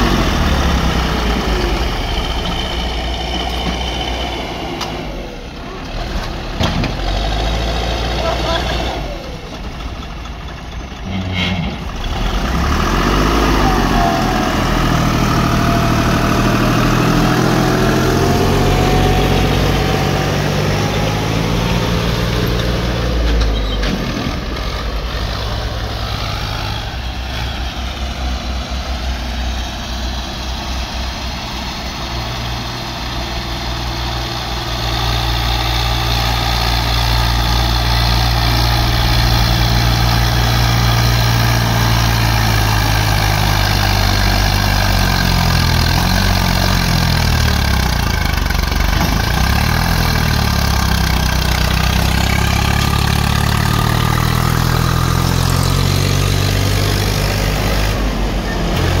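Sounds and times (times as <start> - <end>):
backhoe loader engine: 0.0 - 59.0
tractor diesel engine: 0.0 - 59.0.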